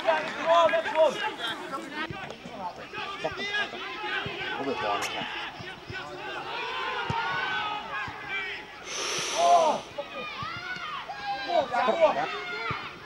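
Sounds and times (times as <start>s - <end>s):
people shouting and calling: 0.0s - 13.0s
brief hissing noise: 8.8s - 9.9s.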